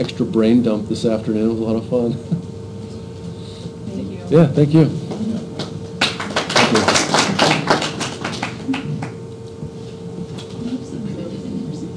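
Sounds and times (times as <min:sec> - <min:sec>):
small group applauding: 0:05.5 - 0:09.2.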